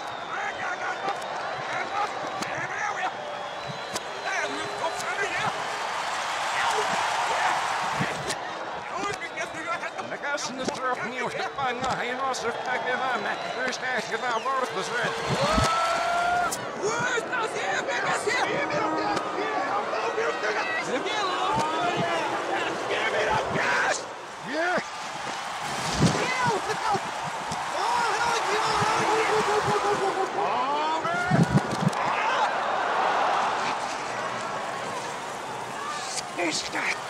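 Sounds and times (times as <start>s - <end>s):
reversed crowd noise and shouting: 0.0s - 37.0s.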